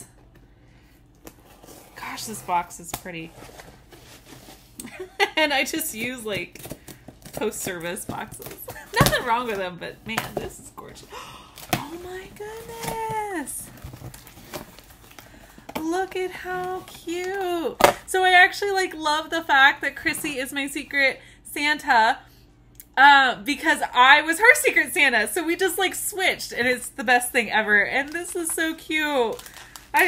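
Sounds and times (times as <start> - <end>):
cardboard package rustling: 11.6 - 17.4, 27.8 - 30.0.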